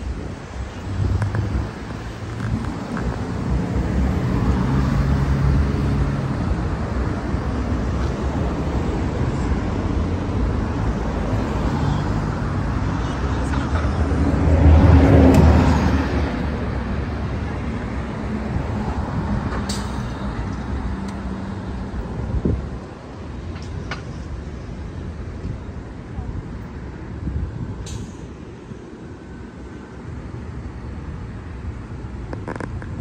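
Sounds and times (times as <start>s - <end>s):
cars driving past: 0.0s - 33.0s
vehicle passing close: 0.8s - 22.8s.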